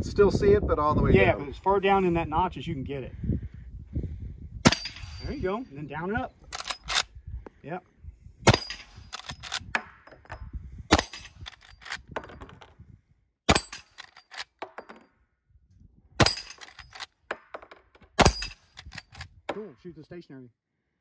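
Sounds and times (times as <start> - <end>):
rifle shots: 8.5 - 9.6, 10.9 - 11.5, 18.2 - 18.9.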